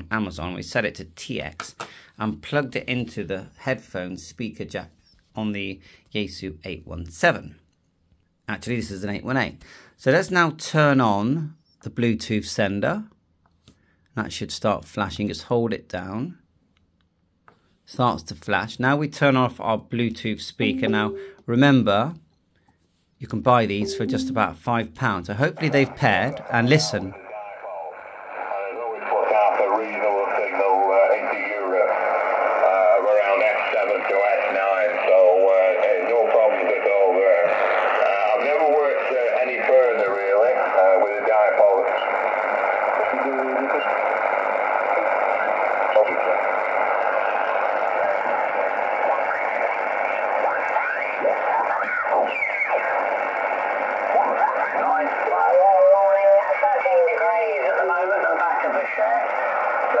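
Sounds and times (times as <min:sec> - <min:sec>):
narrow-band radio speech: 0:20.6 - 0:21.4, 0:23.6 - 0:24.7, 0:25.4 - 1:00.0
radio background hiss: 0:20.7 - 0:21.3, 0:23.8 - 0:24.5, 0:25.4 - 1:00.0.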